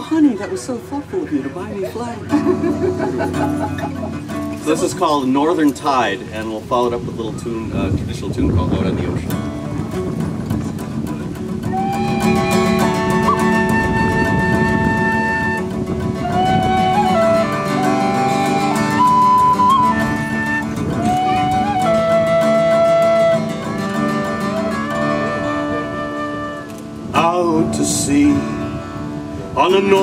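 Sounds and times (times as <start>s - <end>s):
fingerpicked acoustic guitar: 1.0s - 6.0s, 9.1s - 30.0s
tin whistle melody: 11.6s - 26.8s.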